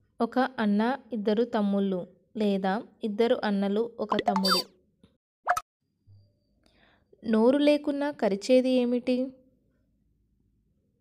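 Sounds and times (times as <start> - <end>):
pop with upward pitch sweep: 4.1 - 4.6.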